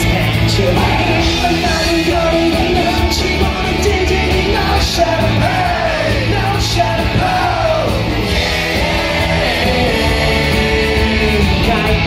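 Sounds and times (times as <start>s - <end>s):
live rock band playing: 0.0s - 12.0s
man singing: 0.0s - 12.0s.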